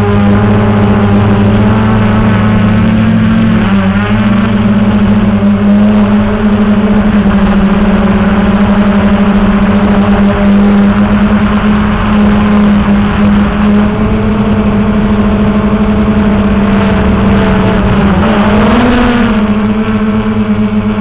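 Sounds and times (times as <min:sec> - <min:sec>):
quadcopter motors humming: 0:00.0 - 0:21.0.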